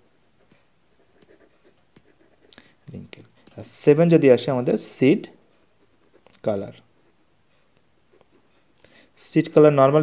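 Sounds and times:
pen scratching on paper: 0:00.9 - 0:02.6, 0:05.8 - 0:07.3.

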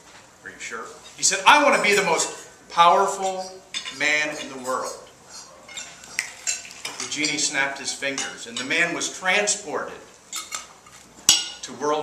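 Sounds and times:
cutlery and dishes clinking: 0:03.2 - 0:08.9, 0:10.3 - 0:11.7.

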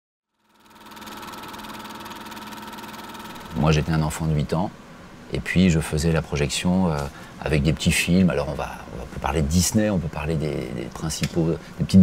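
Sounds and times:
steady hum: 0:00.3 - 0:12.0
film projector clattering: 0:00.4 - 0:04.0.

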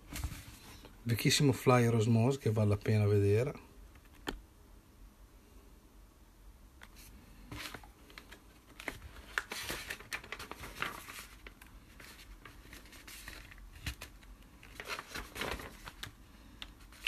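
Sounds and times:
paper pages rustling: 0:06.9 - 0:17.0.

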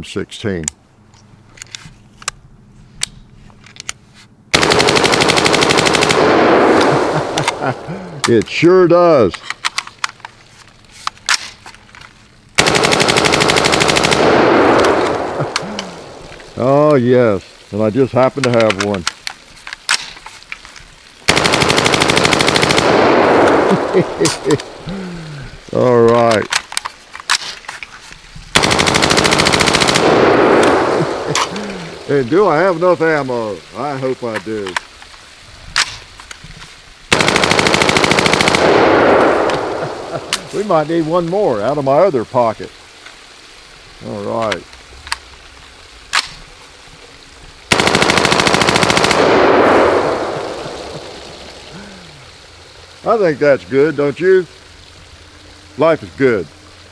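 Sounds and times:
rifle single shot: 0:04.5 - 0:07.8, 0:14.0 - 0:16.2, 0:21.3 - 0:24.8, 0:28.6 - 0:31.5, 0:37.1 - 0:40.4, 0:47.7 - 0:51.1
water jetting from holes: 0:04.6 - 0:56.9
gunshot echo: 0:06.0 - 0:07.9, 0:14.2 - 0:16.4, 0:22.8 - 0:24.8, 0:30.0 - 0:32.0, 0:38.5 - 0:40.5, 0:49.1 - 0:51.2
automatic rifle burst: 0:21.3 - 0:24.7, 0:28.6 - 0:31.8, 0:37.1 - 0:40.4, 0:47.7 - 0:51.0.

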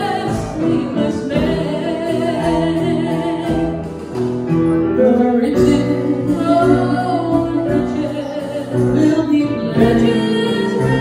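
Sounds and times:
woman singing with vibrato: 0:00.0 - 0:04.2, 0:05.0 - 0:11.0
musical accompaniment: 0:00.0 - 0:11.0.

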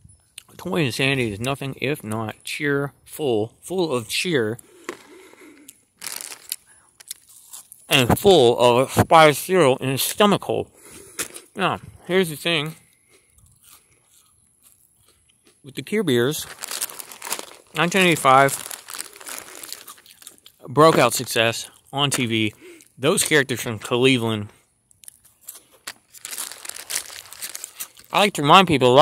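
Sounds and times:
chewing cereal: 0:04.6 - 0:07.8, 0:12.8 - 0:23.0, 0:25.0 - 0:28.3
soft crunches: 0:04.6 - 0:07.8, 0:16.2 - 0:23.4, 0:24.4 - 0:28.3.

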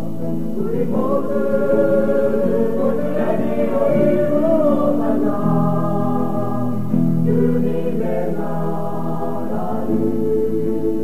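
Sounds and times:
choir singing held chords: 0:00.0 - 0:11.0.

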